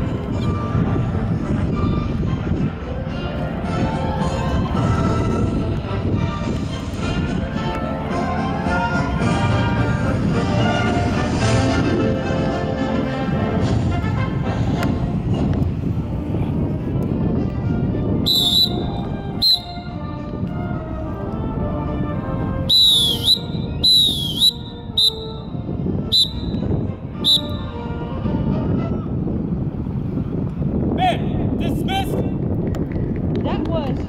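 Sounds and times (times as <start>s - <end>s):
shrill whistle blasts: 18.2s - 19.8s, 22.7s - 25.4s, 26.1s - 27.7s.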